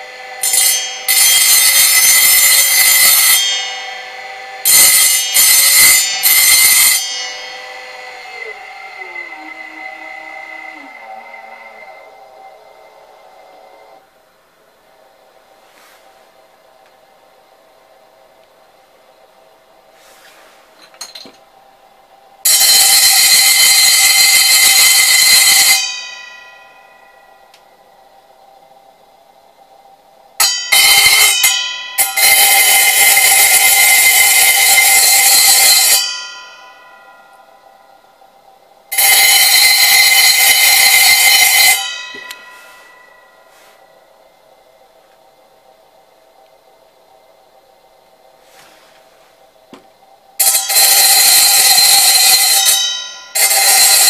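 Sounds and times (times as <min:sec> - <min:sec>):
faint steady hum: 0:00.0 - 0:54.0
drill bit grinding screech: 0:07.9 - 0:14.0.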